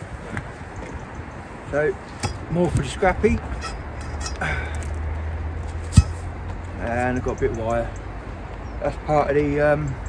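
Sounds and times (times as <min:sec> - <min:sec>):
metal knock: 0:05.9 - 0:06.2.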